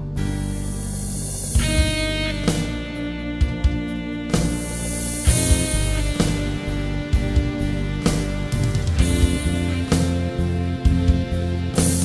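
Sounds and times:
keyboard accompaniment chords: 0:00.0 - 0:12.0.

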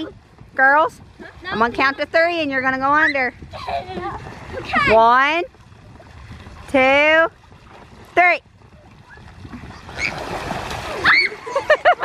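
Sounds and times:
water splashing in a pool: 0:00.0 - 0:12.0
children laughing: 0:03.5 - 0:05.0, 0:10.8 - 0:12.0.

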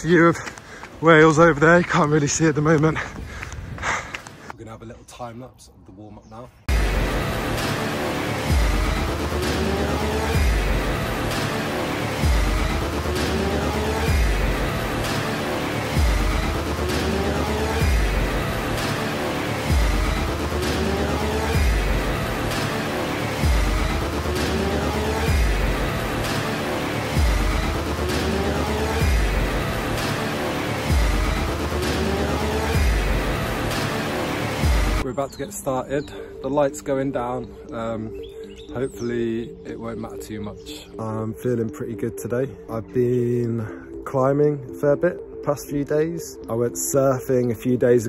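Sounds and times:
deep bass hits: 0:06.7 - 0:35.0.

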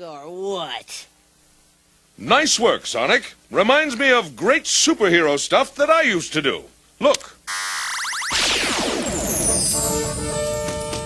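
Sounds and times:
falling sweep: 0:07.9 - 0:09.6.

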